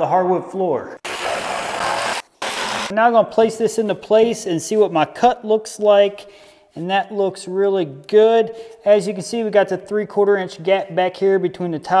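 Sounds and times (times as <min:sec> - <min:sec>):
jigsaw cutting wood: 0:01.0 - 0:02.9.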